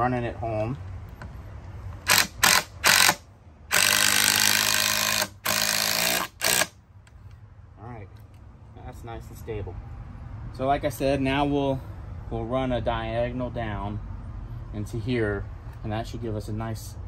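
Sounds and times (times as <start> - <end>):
power driver driving screw: 2.0 - 6.8.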